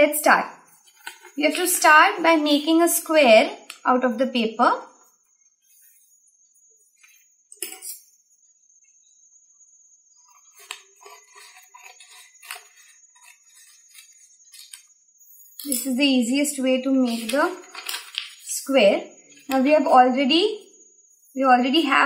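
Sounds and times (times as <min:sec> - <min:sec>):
paper rustling as it is folded: 0:17.1 - 0:18.5.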